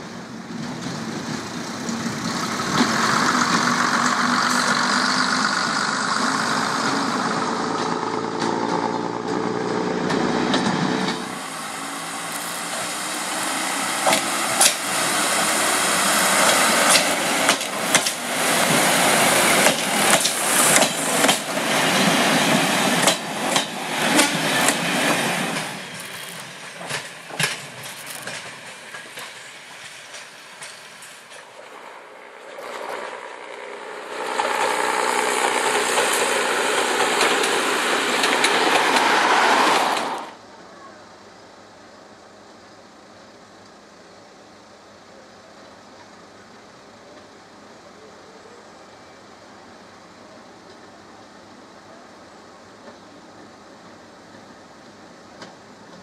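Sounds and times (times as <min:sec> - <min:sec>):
railcar wheels clicking and knocking: 0:00.0 - 0:11.5, 0:12.2 - 0:40.4, 0:54.2 - 0:56.0
train rushing past: 0:00.0 - 0:40.5
diesel train engines running: 0:00.0 - 0:56.0.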